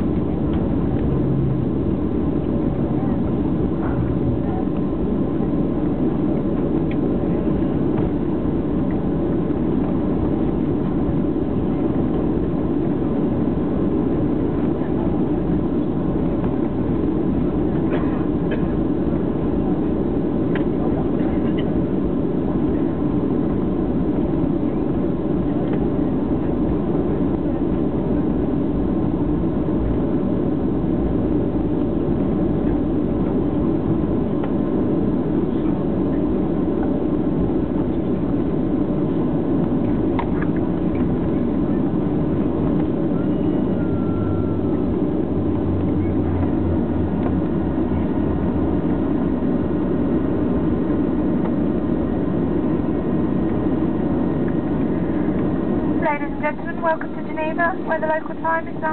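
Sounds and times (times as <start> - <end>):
airplane cabin rumble: 0.0 - 58.9.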